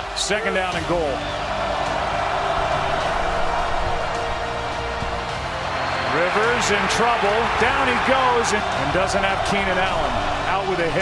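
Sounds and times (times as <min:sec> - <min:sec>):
crowd roar: 0:00.0 - 0:11.0
music playing: 0:00.0 - 0:11.0.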